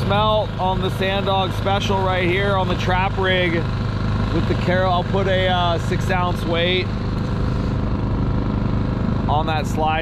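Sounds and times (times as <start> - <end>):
outboard motor humming: 0.0 - 10.0.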